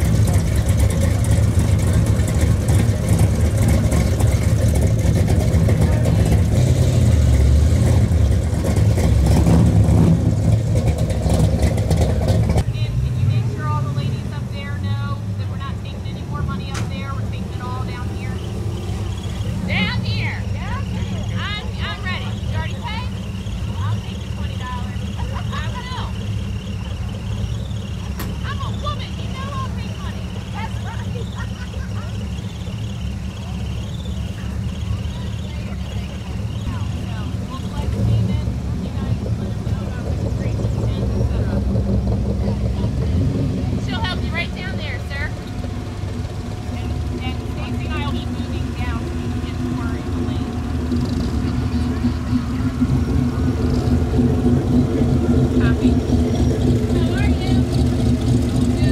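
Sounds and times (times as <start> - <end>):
car engine idling: 0.0 - 58.9.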